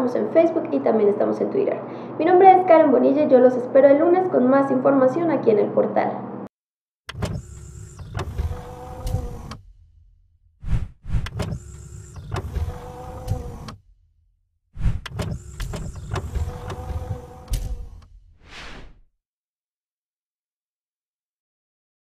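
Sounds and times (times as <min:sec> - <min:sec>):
sharp clicks: 0:07.1 - 0:09.6
small electric motor whirring: 0:07.1 - 0:09.8, 0:10.6 - 0:13.9, 0:14.8 - 0:18.1
brief swish: 0:10.6 - 0:11.3, 0:14.8 - 0:15.0, 0:18.4 - 0:19.1.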